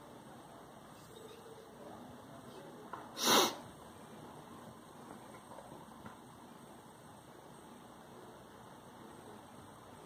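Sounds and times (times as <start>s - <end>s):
faint steady hiss: 0.0s - 10.0s
person sneezing: 3.2s - 3.6s.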